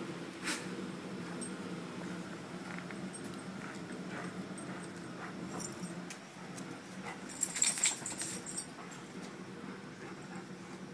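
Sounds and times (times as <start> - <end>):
dogs playing and scuffling: 0.4 - 10.9
metallic jingling: 3.0 - 6.1, 7.2 - 8.8.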